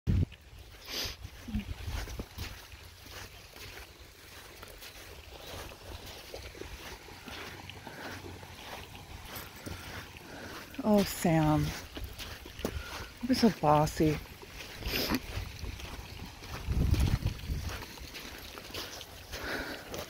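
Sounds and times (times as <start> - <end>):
footsteps and handling on sand: 0.2 - 20.0
wind rumble: 15.4 - 18.0.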